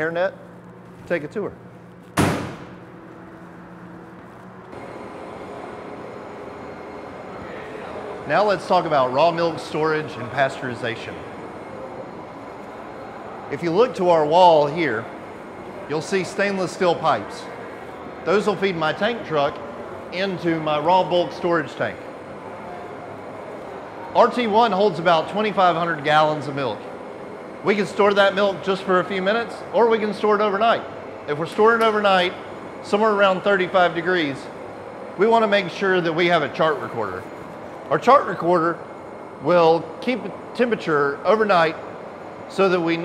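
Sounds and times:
bright hissy hum: 0.0 - 43.0
single loud hit: 2.2 - 2.8
faint steady tones: 3.0 - 43.0.

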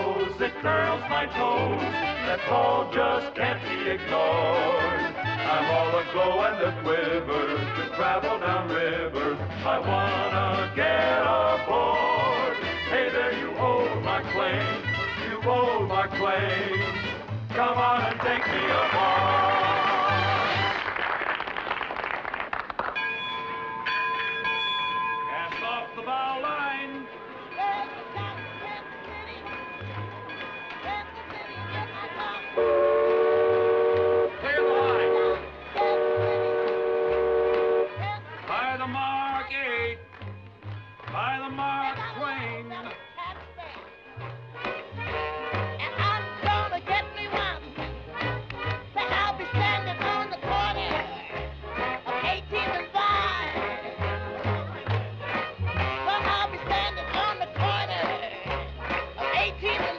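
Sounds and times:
upbeat band music: 0.0 - 21.0, 30.0 - 59.9
steam whistle blasts: 32.6 - 38.0.

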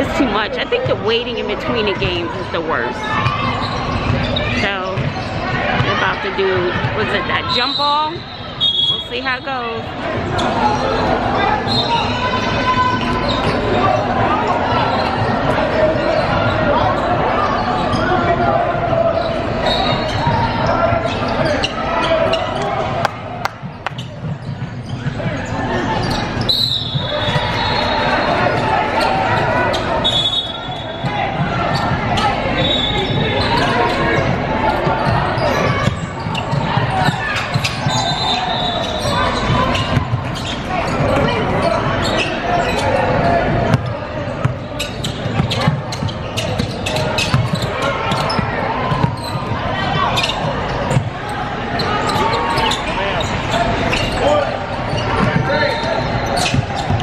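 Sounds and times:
players and spectators voices: 0.0 - 57.0
sneaker squeaks: 0.0 - 57.0
basketball bouncing on hardwood: 5.0 - 5.2.

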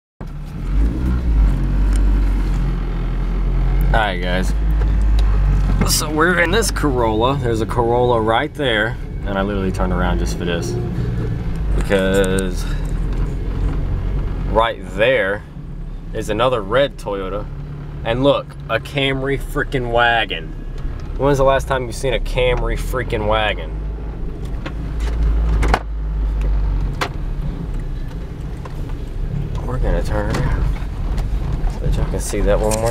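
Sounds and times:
car engine and road noise: 0.2 - 32.9.

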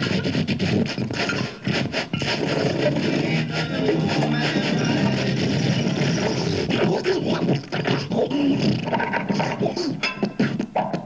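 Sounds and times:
growling vocal noises: 0.7 - 11.0
noisy electronic drone: 1.0 - 11.0.

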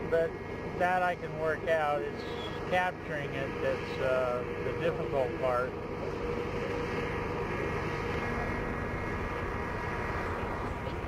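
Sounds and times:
helicopter engine and rotor noise: 0.0 - 11.0.

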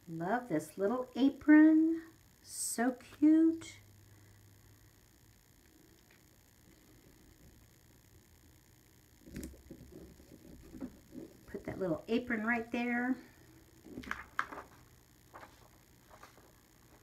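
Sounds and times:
light paper rustling and tapping: 13.9 - 16.5.

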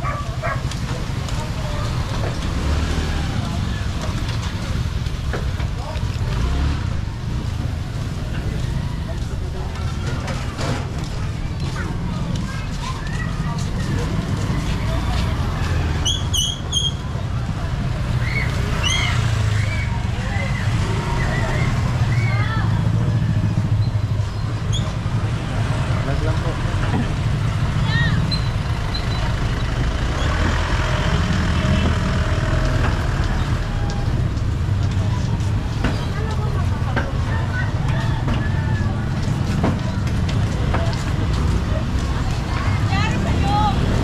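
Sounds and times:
motorcycle engines rumbling: 0.0 - 44.0
voices in background: 0.0 - 44.0.

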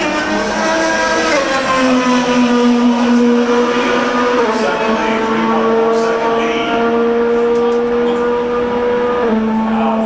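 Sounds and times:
race car engines at high revs: 0.0 - 10.0.

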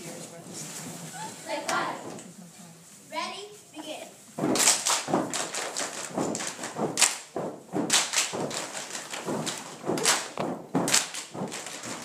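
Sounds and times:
feet stomping: 4.3 - 12.0
hands clapping: 4.4 - 12.0.

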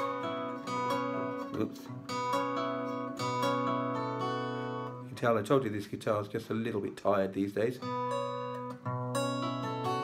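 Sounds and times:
twelve-string acoustic guitar chord: 0.0 - 5.1.

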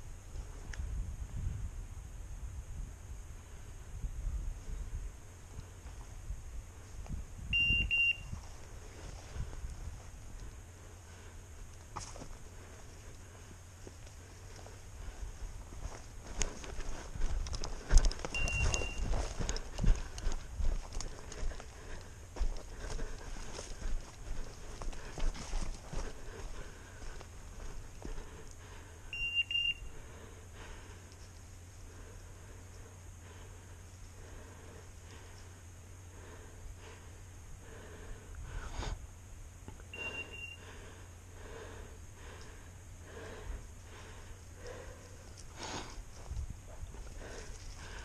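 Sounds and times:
branches and brush rustling: 3.0 - 48.0
high steady beep: 7.5 - 8.4, 18.3 - 19.1, 29.1 - 30.0, 39.9 - 40.6
person breathing heavily: 8.4 - 48.0
footsteps crunching through dry leaves: 15.4 - 28.2.

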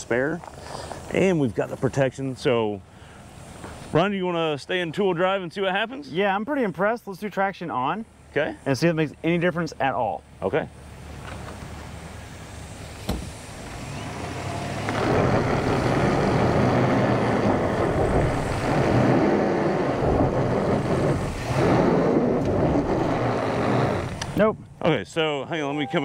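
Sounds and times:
truck engine pulling under load: 13.0 - 24.4
tyres spinning on gravel: 14.7 - 24.4.

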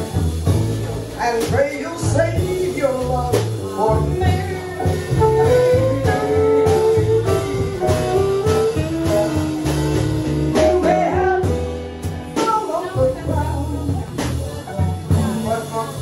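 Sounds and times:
drums: 0.0 - 16.0
plucked upright bass: 0.0 - 16.0
saxophone melody: 4.1 - 11.7
woman singing into microphone: 10.7 - 11.7, 12.4 - 14.6.

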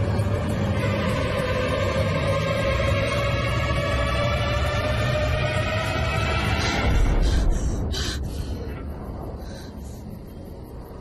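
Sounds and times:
horror film score drone: 0.0 - 11.0.

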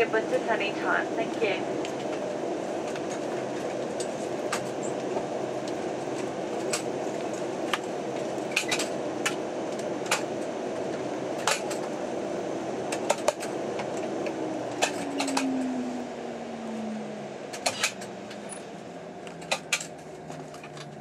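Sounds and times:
turboprop engine winding down: 0.0 - 21.0
clicks and clatters in cabin: 1.8 - 12.0, 12.9 - 15.5, 17.5 - 18.6, 19.2 - 21.0.

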